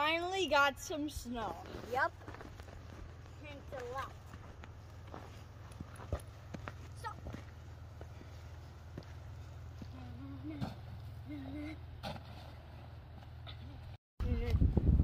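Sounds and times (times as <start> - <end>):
steady low hum: 0.1 - 15.0.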